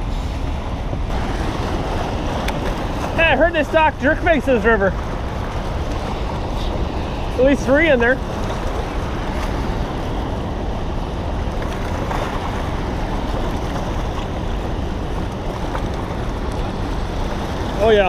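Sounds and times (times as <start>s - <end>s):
water rushing: 0.0s - 18.0s
wind buffeting microphone: 0.0s - 18.0s.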